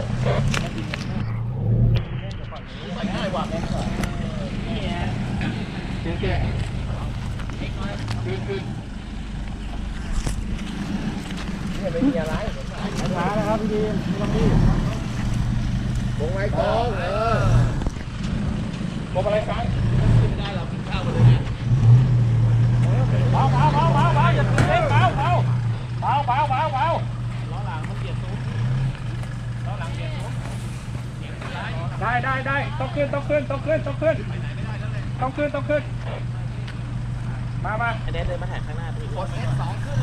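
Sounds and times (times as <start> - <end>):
truck engine running under load: 0.0 - 40.0
bystanders calling out: 23.0 - 40.0.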